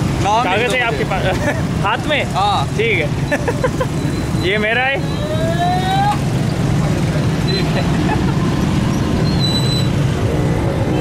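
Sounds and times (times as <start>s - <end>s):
traffic engines rumbling: 0.0s - 11.0s.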